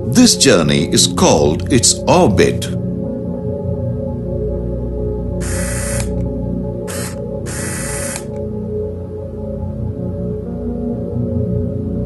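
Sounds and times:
ambient background music: 0:00.0 - 0:12.0.

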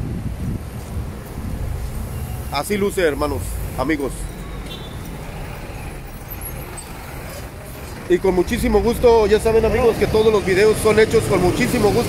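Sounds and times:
cars and trucks passing: 0:00.0 - 0:12.0.

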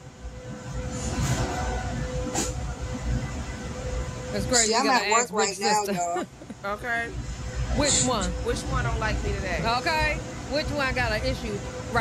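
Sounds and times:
low rumbling hum: 0:00.0 - 0:12.0.

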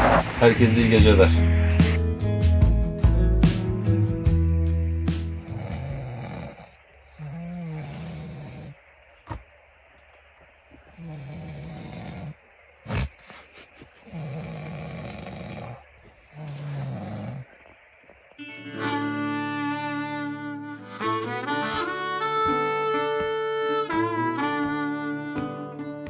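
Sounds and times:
man snoring: 0:05.2 - 0:08.8, 0:10.9 - 0:13.1, 0:14.0 - 0:17.5.

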